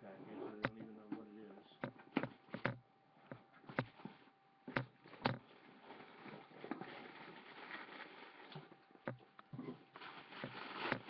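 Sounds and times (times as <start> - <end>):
packaging rustling and crinkling: 5.0 - 11.0.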